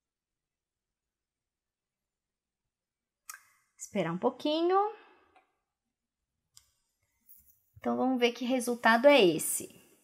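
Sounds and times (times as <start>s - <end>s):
woman speaking: 3.8s - 5.1s, 7.8s - 9.9s.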